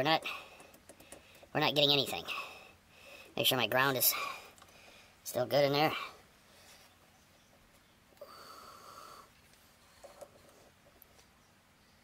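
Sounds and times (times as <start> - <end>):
faint clicks: 0.2 - 1.5.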